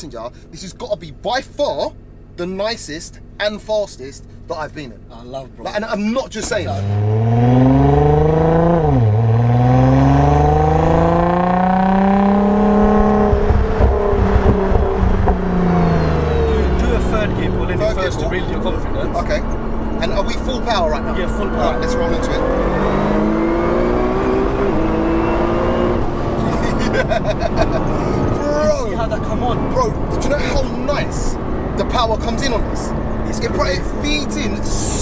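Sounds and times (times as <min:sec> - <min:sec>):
car engine accelerating hard: 0:06.4 - 0:35.0
thin turbo whine: 0:06.5 - 0:26.4.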